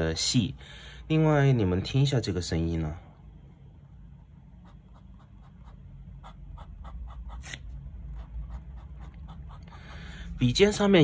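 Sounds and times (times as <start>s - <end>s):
pen nib scratching on paper: 4.6s - 9.8s.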